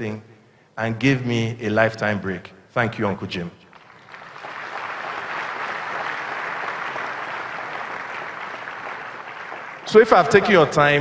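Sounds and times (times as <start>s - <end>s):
audience applauding: 3.7s - 11.0s.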